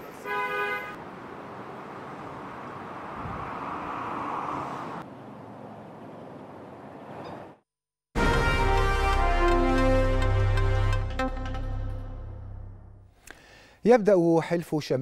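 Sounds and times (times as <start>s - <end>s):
steady traffic noise: 0.0s - 7.7s
quiet outdoor background: 0.0s - 8.1s, 9.2s - 15.0s
car horn toot: 0.2s - 1.0s.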